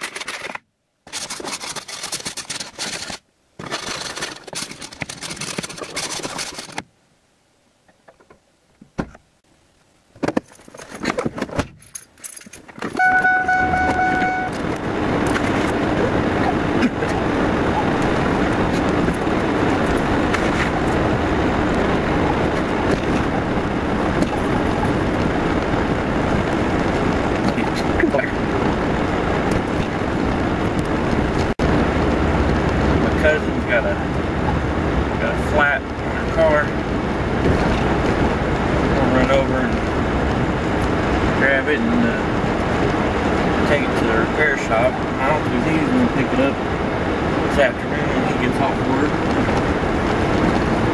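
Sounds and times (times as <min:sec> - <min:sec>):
short electronic chime: 0:13.0 - 0:14.6
engine and heater blower running: 0:13.8 - 0:50.9.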